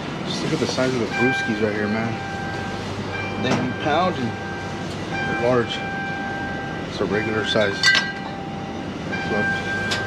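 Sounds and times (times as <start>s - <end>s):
indoor shop hum: 0.0s - 10.0s
thin steady whine: 0.0s - 10.0s.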